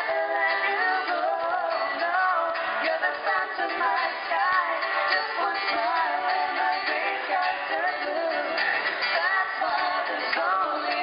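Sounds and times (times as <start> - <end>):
acoustic guitar: 0.0 - 11.0
group singing in harmony: 0.0 - 11.0.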